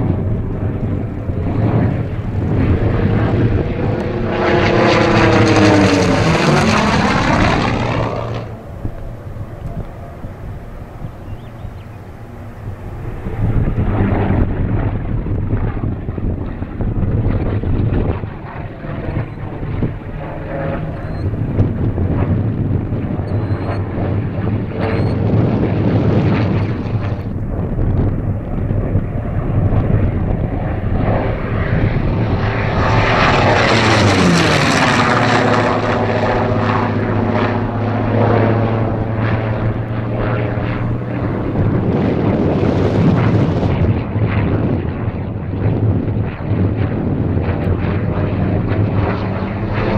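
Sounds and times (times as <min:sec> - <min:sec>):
propeller plane engine overhead: 0:00.0 - 0:49.9
wind buffeting microphone: 0:00.0 - 0:49.9.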